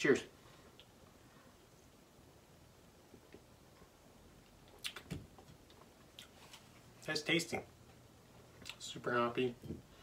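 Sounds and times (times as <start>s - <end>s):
mouth clicks and lip smacks: 4.5s - 6.4s, 8.6s - 8.8s.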